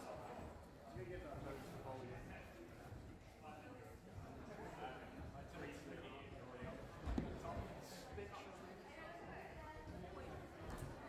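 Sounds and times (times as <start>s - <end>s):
faint background chatter: 0.0s - 11.0s.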